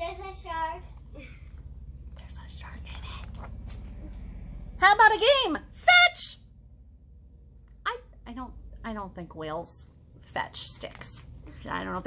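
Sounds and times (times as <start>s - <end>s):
book page turning: 3.1s - 4.0s.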